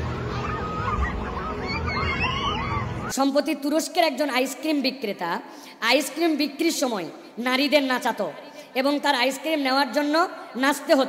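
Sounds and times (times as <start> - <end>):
people crying and shouting: 0.0 - 3.2.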